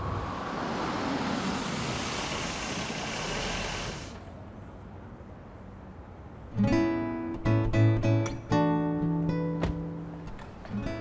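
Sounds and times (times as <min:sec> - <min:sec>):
vehicle driving on street: 0:00.0 - 0:06.7.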